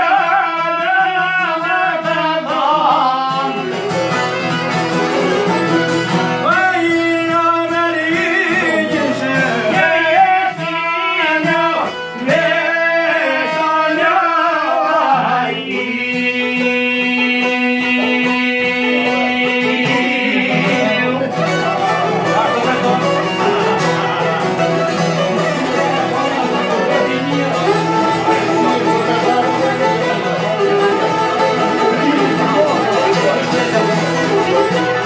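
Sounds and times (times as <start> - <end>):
man singing: 0.0 - 35.0
strummed lutes: 0.0 - 35.0
bowed violin: 3.2 - 14.4, 15.7 - 35.0.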